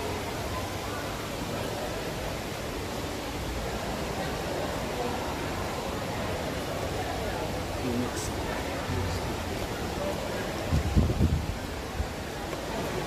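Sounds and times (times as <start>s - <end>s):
faint voices: 0.0s - 13.0s
indoor waterfall rushing: 0.0s - 13.0s.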